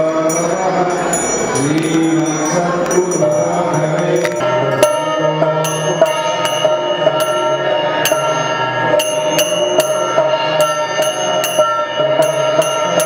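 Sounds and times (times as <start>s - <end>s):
bells and small cymbals struck: 0.0s - 13.0s
steady ringing tone: 0.0s - 13.0s.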